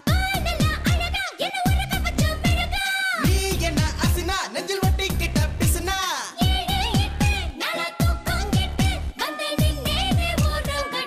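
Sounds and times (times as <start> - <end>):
electronic drum beat: 0.0 - 11.0.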